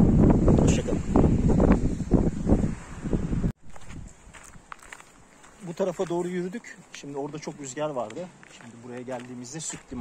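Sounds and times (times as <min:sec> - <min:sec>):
wind buffeting microphone: 0:00.0 - 0:04.8, 0:09.6 - 0:10.0
footsteps on dirt path: 0:03.6 - 0:10.0.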